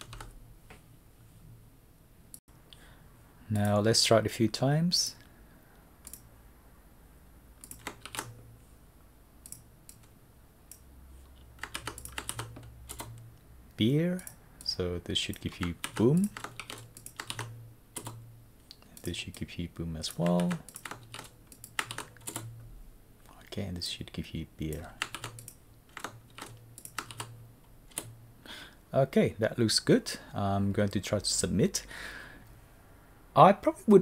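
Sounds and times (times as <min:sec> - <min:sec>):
keyboard keys clicking: 0:00.0 - 0:00.3, 0:07.6 - 0:08.4, 0:11.6 - 0:13.2, 0:15.3 - 0:18.2, 0:20.1 - 0:22.5, 0:24.7 - 0:27.3
keyboard key presses: 0:07.6 - 0:08.4.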